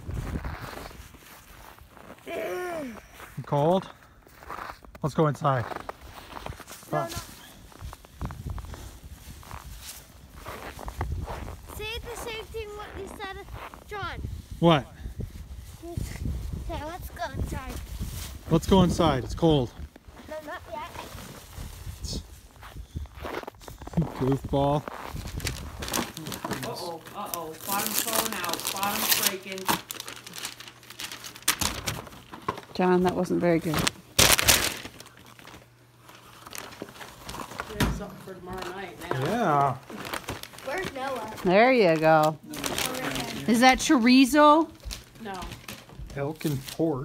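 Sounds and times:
snow crunching and scraping: 0.0 - 14.8, 15.4 - 27.0
tissue paper crinkling: 24.8 - 46.9.

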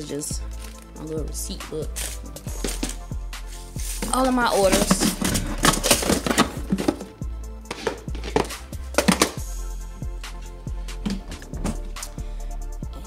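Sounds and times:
plastic boxes rattling in drawer: 2.0 - 3.0, 3.9 - 9.4.

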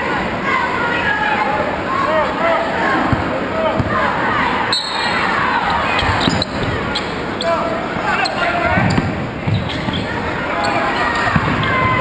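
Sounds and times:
crowd chatter and shouts: 0.0 - 12.0
sneakers squeaking: 1.9 - 12.0.

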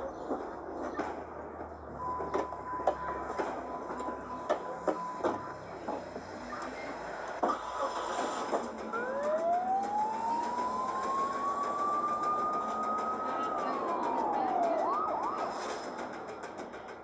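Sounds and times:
siren whoops: 8.9 - 16.0
police siren wailing: 8.9 - 16.4.

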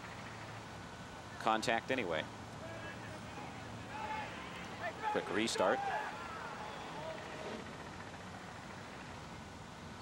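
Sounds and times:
outdoor soccer field background noise: 0.0 - 10.0
distant voice shouting: 2.6 - 7.6.

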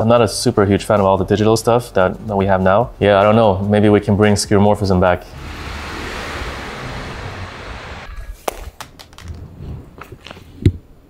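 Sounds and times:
rushing whoosh: 5.3 - 8.4.

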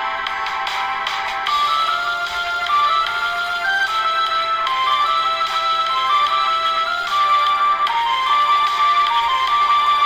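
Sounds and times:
bright high melody: 1.4 - 10.0.

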